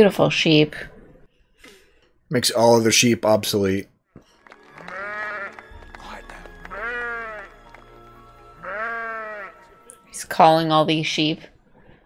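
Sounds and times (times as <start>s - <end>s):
low musical drone: 4.4s - 10.6s
sheep bleating: 4.7s - 5.7s, 6.5s - 7.9s, 8.6s - 9.7s.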